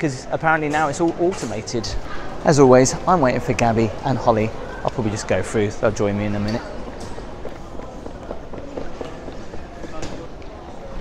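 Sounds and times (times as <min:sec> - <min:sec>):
footsteps: 0:05.9 - 0:11.0
suitcase wheels rolling on tiles: 0:06.8 - 0:11.0.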